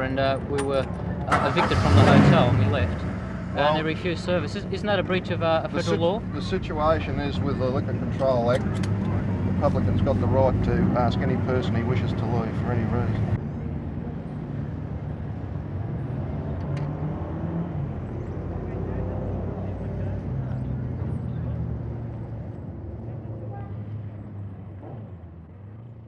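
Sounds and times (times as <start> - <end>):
vehicle engine running: 0.0 - 16.6.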